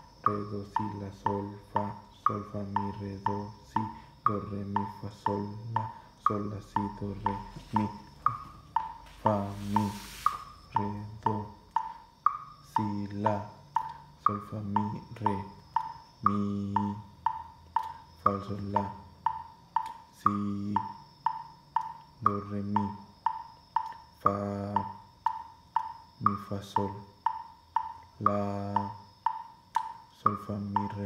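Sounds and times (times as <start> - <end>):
person singing a syllable: 0.0 - 8.5, 9.1 - 11.8, 12.7 - 17.2, 18.2 - 19.1, 20.1 - 21.0, 22.2 - 23.1, 24.2 - 25.0, 26.2 - 27.2, 28.2 - 29.1, 30.2 - 31.0
metronome clicking: 0.0 - 31.0.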